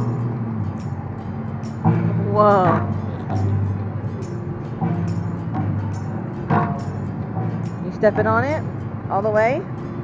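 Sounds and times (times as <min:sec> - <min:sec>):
plucked steel strings ringing: 0:00.0 - 0:10.0.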